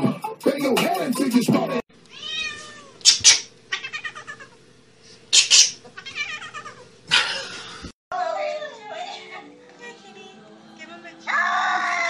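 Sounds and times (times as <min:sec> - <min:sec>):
kitten meowing: 0:02.1 - 0:04.5.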